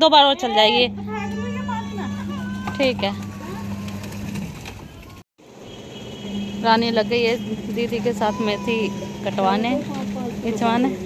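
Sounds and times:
outdoor background noise: 0.0s - 11.0s
low steady hum: 0.1s - 4.7s.

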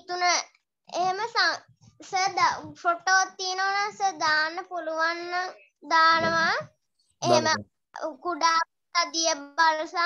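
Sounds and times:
child speaking in sing-song tones: 0.0s - 10.0s.

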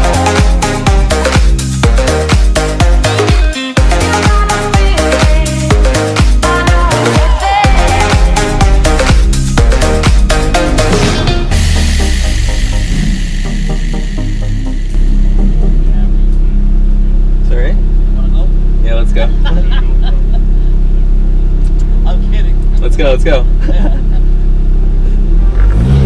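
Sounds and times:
background music: 0.0s - 17.1s
car engine idling: 0.0s - 26.0s.

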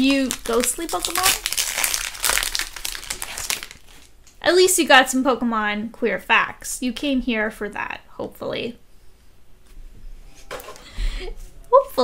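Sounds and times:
foil wrapper crinkling: 0.0s - 4.4s.

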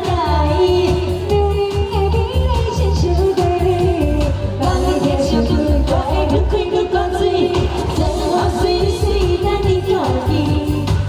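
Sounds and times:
amplified music with heavy bass: 0.0s - 11.0s
woman singing into microphone: 0.0s - 11.0s.

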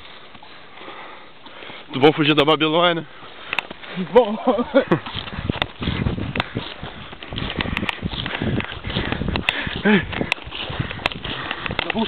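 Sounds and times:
person breathing hard: 0.4s - 1.9s, 5.1s - 11.9s.

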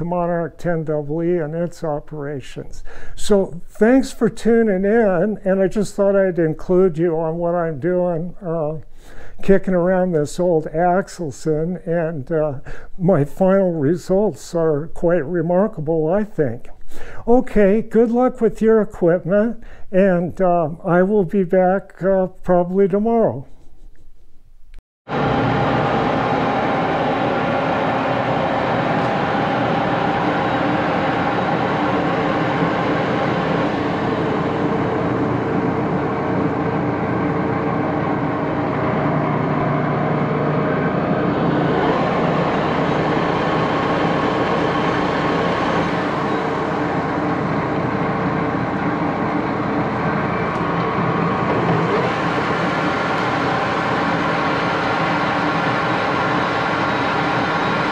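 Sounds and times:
lathe gear and motor whir: 25.1s - 57.9s.

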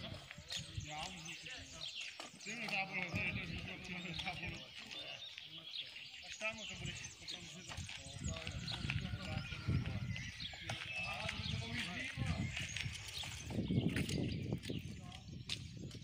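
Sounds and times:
distant people talking: 0.0s - 13.1s.

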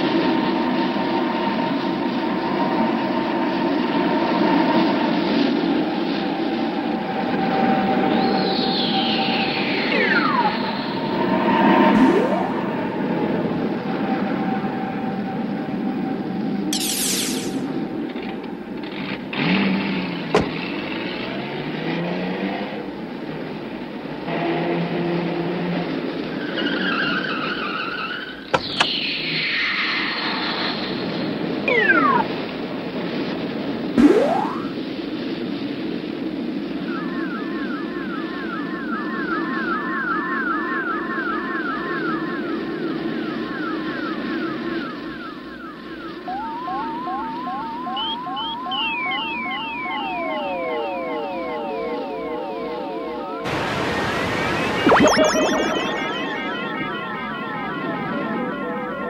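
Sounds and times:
high whistles: 12.0s - 12.9s
fast warbling tone: 12.0s - 13.2s, 31.7s - 32.5s, 34.0s - 34.8s, 54.8s - 57.3s
tones sliding in pitch: 12.0s - 13.2s, 31.7s - 32.5s, 34.0s - 34.7s, 54.8s - 57.3s.

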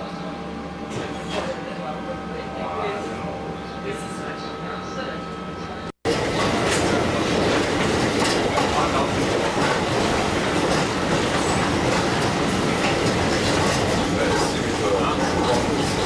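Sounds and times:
steel wheels rumbling on rails: 0.0s - 16.0s
wheels clicking over rail joints: 6.1s - 16.0s.

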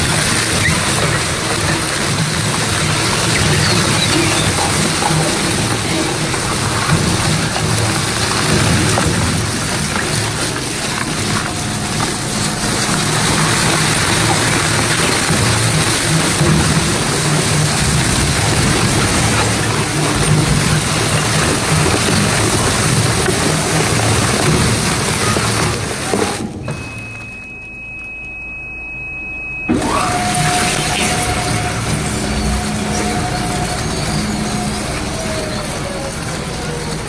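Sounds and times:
shredder chewing sandpaper: 0.0s - 26.6s, 29.8s - 37.0s.

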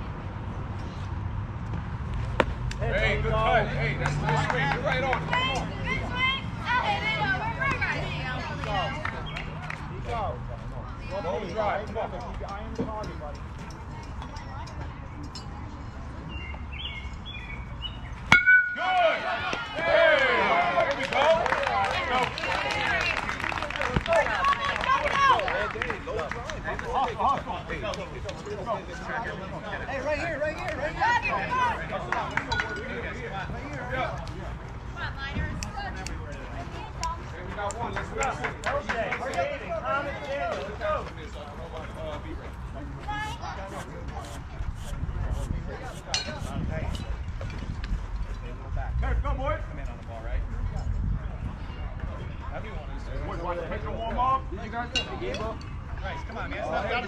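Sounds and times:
bat cracking ball: 18.3s - 19.7s
crowd shouting and cheering: 18.4s - 26.0s.

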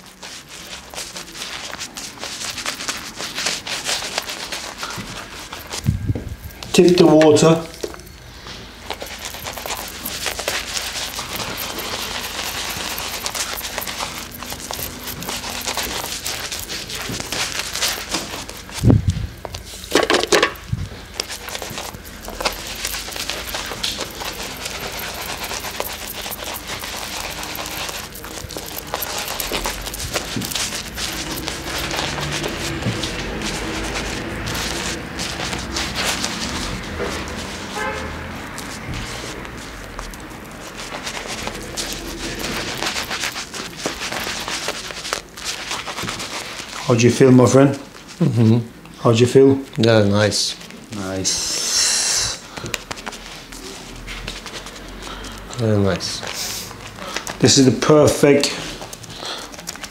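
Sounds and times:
lather squishing in beard: 0.0s - 59.9s.

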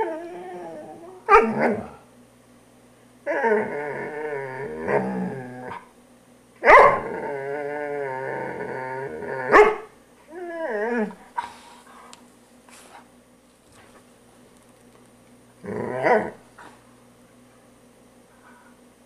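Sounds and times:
dog growling: 0.0s - 2.0s, 3.3s - 5.9s, 6.9s - 9.6s, 15.6s - 16.8s
dog whining growl: 0.0s - 2.0s, 3.2s - 5.9s, 6.7s - 9.6s, 10.3s - 11.7s, 15.6s - 16.8s
dog barking: 1.3s - 1.6s, 6.6s - 7.0s, 9.5s - 9.9s.

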